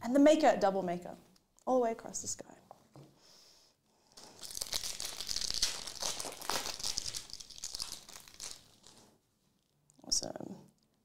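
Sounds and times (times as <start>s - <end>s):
foil wrapper tearing and crinkling: 4.2s - 9.1s.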